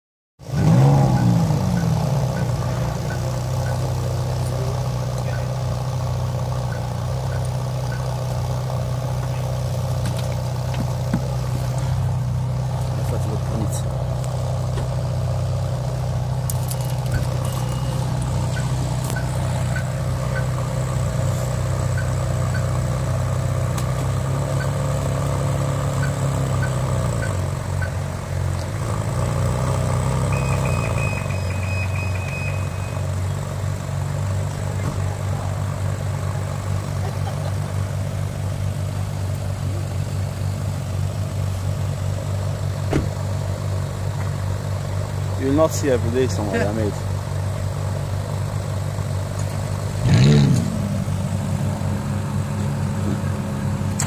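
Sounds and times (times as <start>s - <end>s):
car engine idling: 0.4s - 54.0s.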